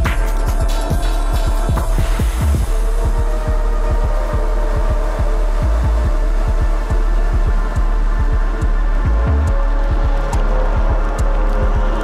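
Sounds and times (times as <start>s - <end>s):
garage dance music: 0.0s - 12.0s.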